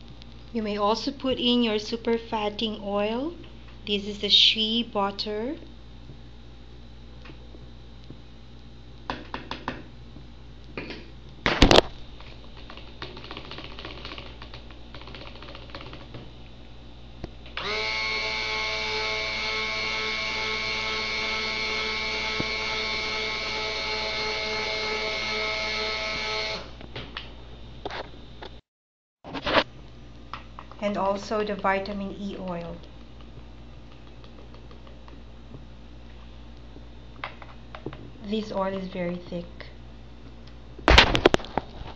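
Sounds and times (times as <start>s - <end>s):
stick blender running: 17.6s - 26.7s.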